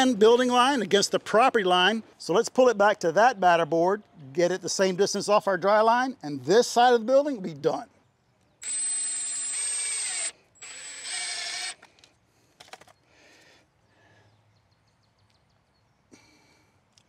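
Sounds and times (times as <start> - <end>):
power drill whining: 8.6 - 12.0
faint clicks and handling: 11.8 - 13.0.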